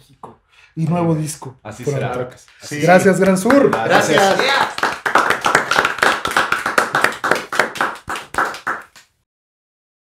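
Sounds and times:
people clapping: 0:01.9 - 0:09.2.

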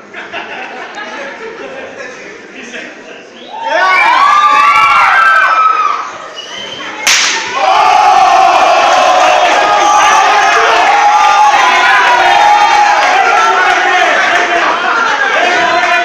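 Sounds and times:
crowd shouting and whooping: 0:03.5 - 0:16.0
open-hand slap on bare chest: 0:07.1 - 0:07.5
crowd sustained cry: 0:07.4 - 0:16.0.

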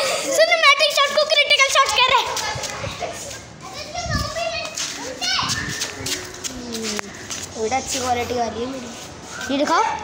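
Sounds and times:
boys chattering and calling out: 0:00.0 - 0:10.0.

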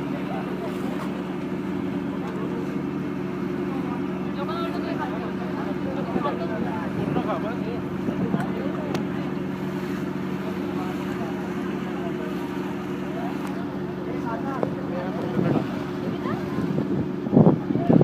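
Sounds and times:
diesel engine drone: 0:00.0 - 0:18.0
voices chattering: 0:00.0 - 0:18.0.

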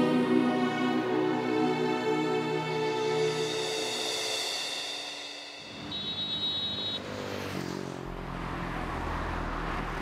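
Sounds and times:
low musical drone: 0:00.0 - 0:05.8
passing vehicles: 0:05.6 - 0:10.0.

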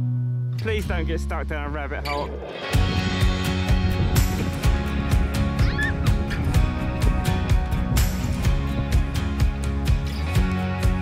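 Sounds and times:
background music with steady beat: 0:01.0 - 0:11.0.

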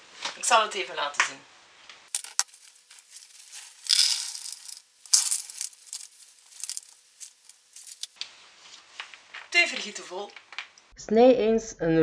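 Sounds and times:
small hard fruits rattling into bowl: 0:02.1 - 0:08.2.

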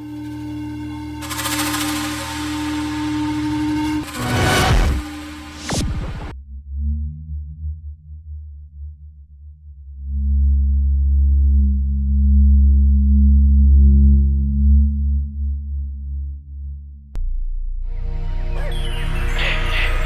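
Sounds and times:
deep electronic drone: 0:00.0 - 0:20.0.

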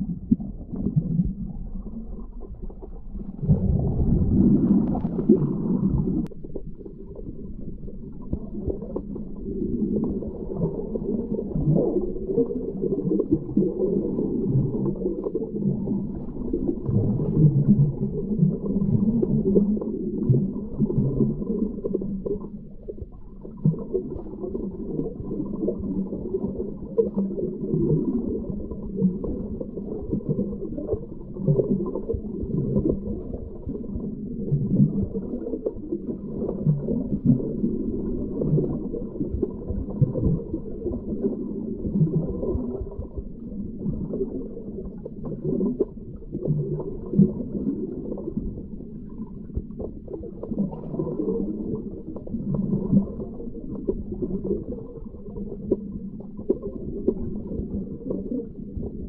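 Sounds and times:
underwater river current rumbling: 0:00.0 - 0:59.0.

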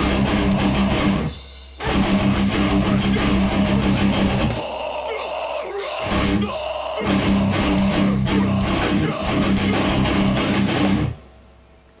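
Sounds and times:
heavy metal band playing: 0:00.0 - 0:11.2
faint amplifier hum: 0:00.0 - 0:12.0.

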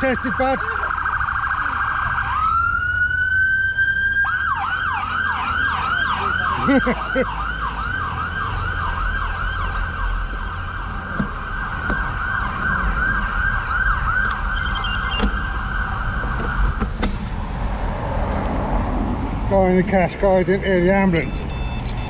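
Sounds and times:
ambulance siren yelping: 0:00.0 - 0:17.0
low rumble of wind and road: 0:00.0 - 0:22.0.

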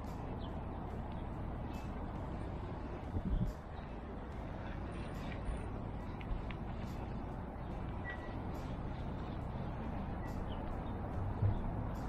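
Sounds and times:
city traffic rumble: 0:00.0 - 0:12.0
low thumps: 0:11.4 - 0:11.8.

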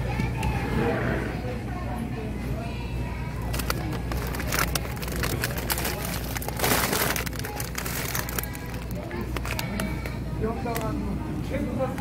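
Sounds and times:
plastic bag crinkling: 0:03.4 - 0:10.0.

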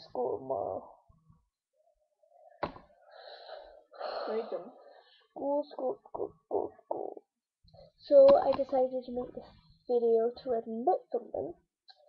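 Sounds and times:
girl breathing out: 0:03.1 - 0:04.7.

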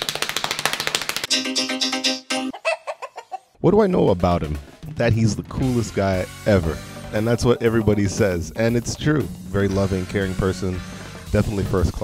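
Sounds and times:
drum kit fast strokes: 0:04.1 - 0:12.0.

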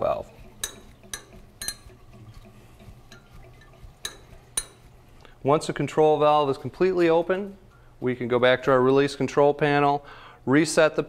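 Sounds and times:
low steady hum: 0:00.0 - 0:11.0
valve ticking: 0:00.2 - 0:05.4.

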